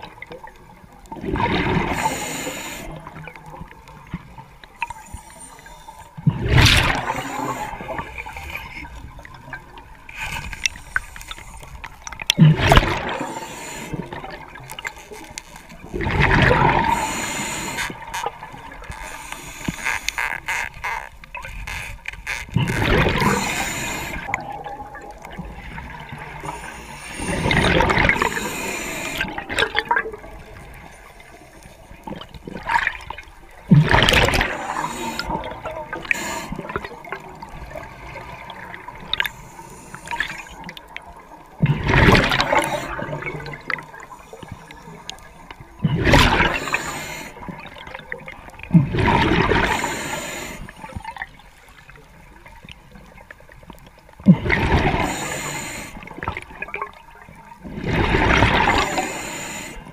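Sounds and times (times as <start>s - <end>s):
underwater bubbling of exhaled air: 0.0s - 20.5s, 21.2s - 59.9s
water noise: 0.0s - 59.9s.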